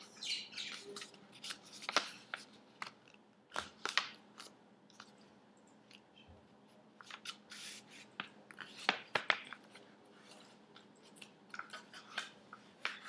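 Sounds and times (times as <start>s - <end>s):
paper being folded and creased: 0.7s - 5.2s.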